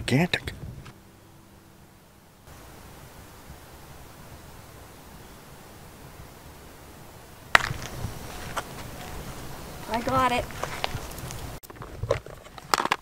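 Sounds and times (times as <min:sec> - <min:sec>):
steady outdoor hiss: 0:00.0 - 0:13.0
footsteps crackling on dry leaves: 0:07.5 - 0:11.8.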